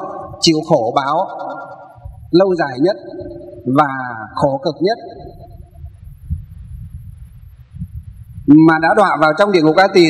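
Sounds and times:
low uneven rumble: 5.2s - 8.6s.

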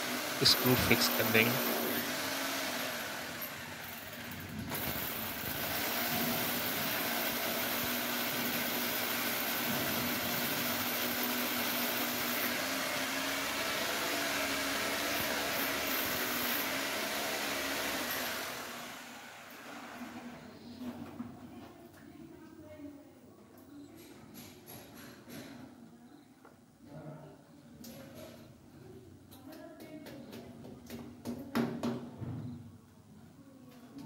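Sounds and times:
electric drill boring into wall: 0.0s - 20.4s.

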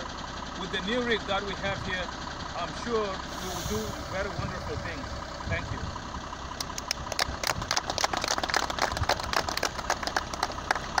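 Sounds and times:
people clapping: 6.6s - 11.0s.

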